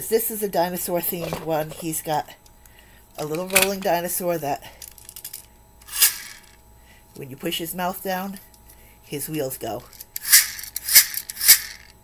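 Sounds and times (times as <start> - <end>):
toy wheel mechanism rattling: 4.8 - 6.6, 9.9 - 12.0.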